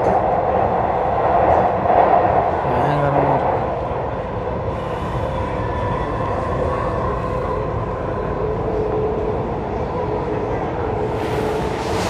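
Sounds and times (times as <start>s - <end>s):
train rumble inside carriage: 0.0s - 12.0s.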